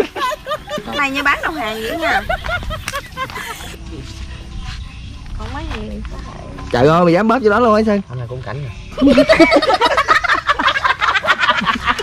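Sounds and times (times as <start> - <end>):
people laughing hard: 0.0 - 3.8, 9.0 - 12.0.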